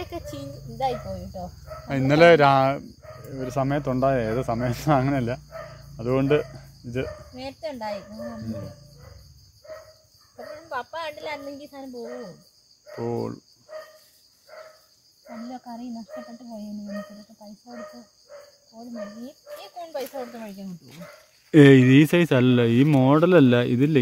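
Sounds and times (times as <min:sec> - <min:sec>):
people talking: 0:00.0 - 0:05.4, 0:06.0 - 0:08.8, 0:10.4 - 0:12.4, 0:15.4 - 0:18.0, 0:18.8 - 0:24.0
insects chirring: 0:00.0 - 0:24.0.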